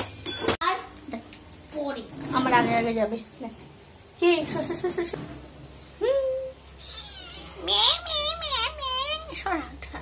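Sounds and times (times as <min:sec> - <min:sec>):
kitten meowing: 0:06.8 - 0:07.6.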